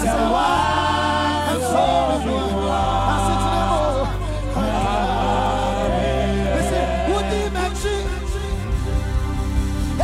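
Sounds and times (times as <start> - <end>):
lead singer and backing vocals: 0.0 - 9.2
low bass notes: 0.0 - 10.0.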